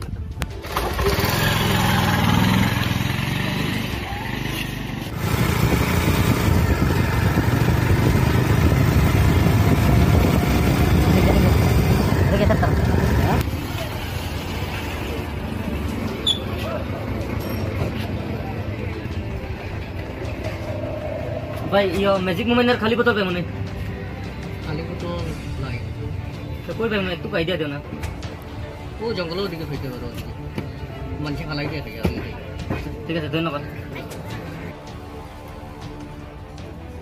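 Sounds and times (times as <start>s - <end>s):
motorcycle engine riding away: 0.4s - 22.0s.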